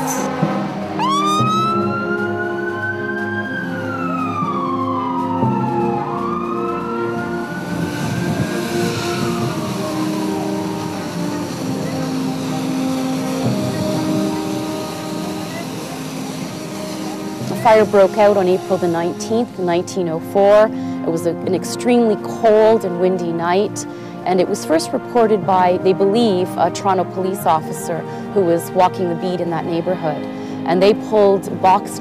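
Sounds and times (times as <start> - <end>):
fire truck siren wailing: 0.0 - 21.4
background music: 0.0 - 32.0.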